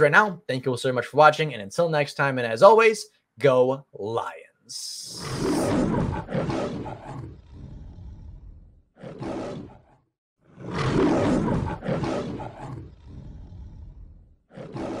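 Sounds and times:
lion roar: 5.0s - 15.0s.

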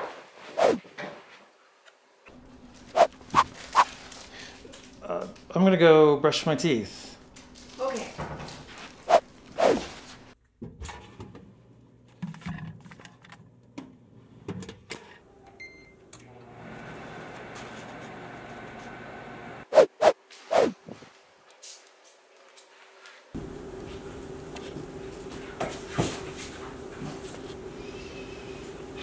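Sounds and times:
microwave oven humming: 15.2s - 19.6s, 23.4s - 29.0s.

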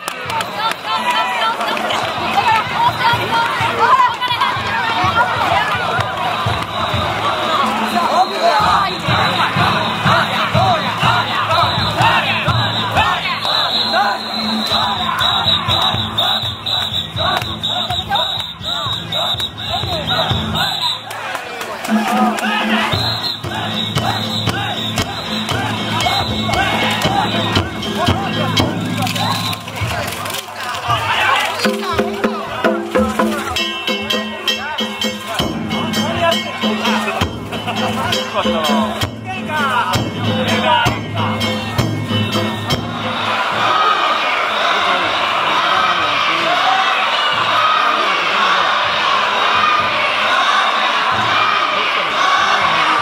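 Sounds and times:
crowd shouting together: 0.0s - 53.0s
drums: 0.0s - 53.0s
bamboo flute: 5.6s - 30.2s.

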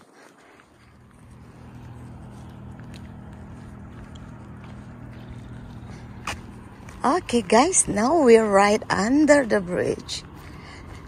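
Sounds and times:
low motor hum: 0.2s - 11.0s.

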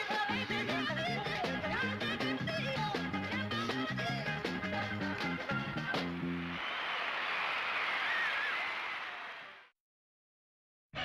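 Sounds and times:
audience applause: 6.2s - 9.7s.

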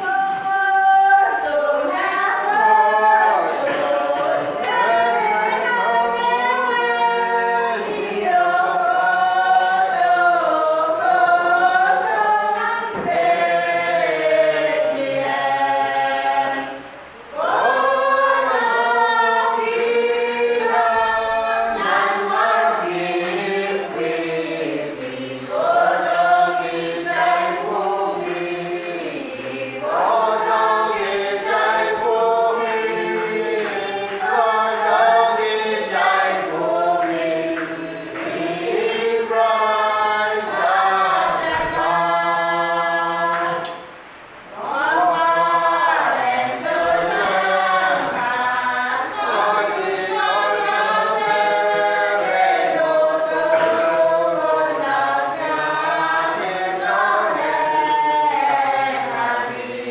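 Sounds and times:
congregation singing a hymn: 0.0s - 59.9s.

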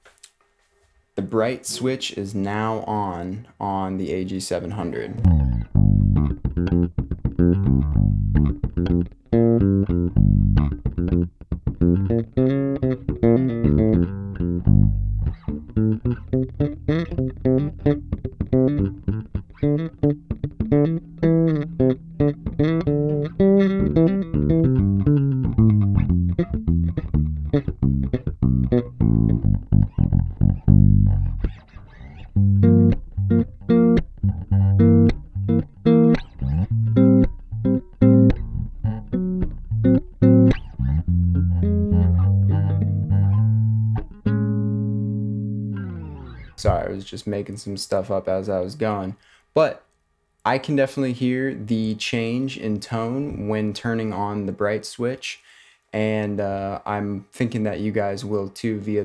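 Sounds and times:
electric bass plucked notes: 4.7s - 49.0s.

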